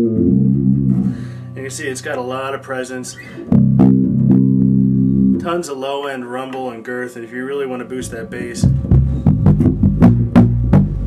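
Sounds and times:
electric bass notes plucked: 0.0s - 5.6s, 8.0s - 11.0s.

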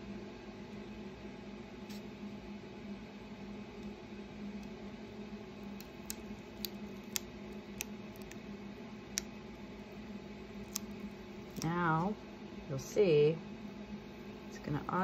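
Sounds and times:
steady low hum: 0.0s - 15.0s
tape peeling clicks and ticks: 5.7s - 8.4s, 9.1s - 9.4s, 10.6s - 11.8s.

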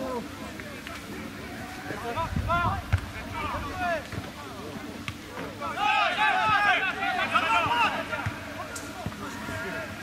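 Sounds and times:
players shouting: 0.0s - 10.0s
wind rumbling on microphone: 2.2s - 3.8s.

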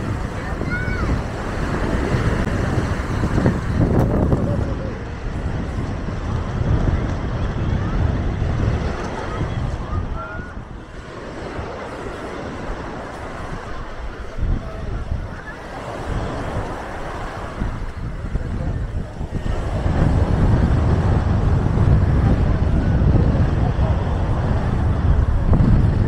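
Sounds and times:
faint voices: 0.0s - 26.0s
small waves washing on shore: 0.0s - 26.0s
wind rumbling on microphone: 0.0s - 26.0s.

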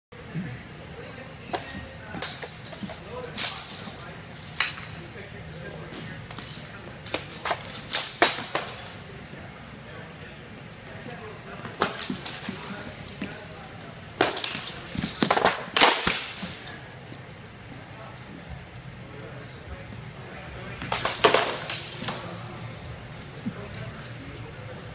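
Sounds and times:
weapons clashing on shields: 6.3s - 8.9s, 11.6s - 13.5s, 14.2s - 16.7s, 20.8s - 22.4s.

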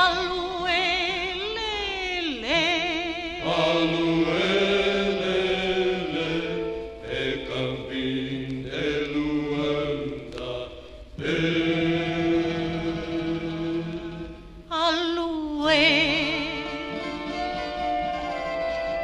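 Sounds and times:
woman singing with vibrato: 0.0s - 9.4s, 11.2s - 18.6s
vocal group singing held chords: 3.2s - 15.0s.

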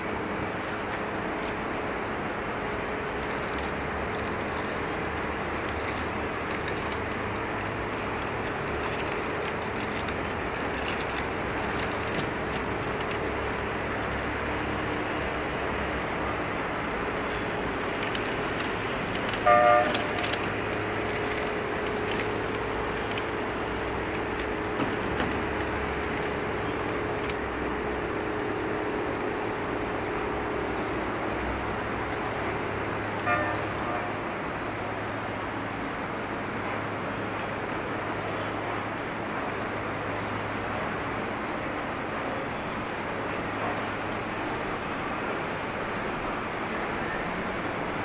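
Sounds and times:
street traffic: 0.0s - 48.0s
car horn toot: 19.4s - 20.2s, 33.2s - 34.1s.

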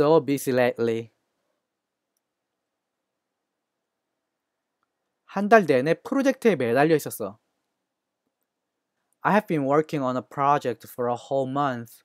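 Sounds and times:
man speaking: 0.0s - 1.2s, 5.3s - 7.4s, 9.2s - 12.0s.

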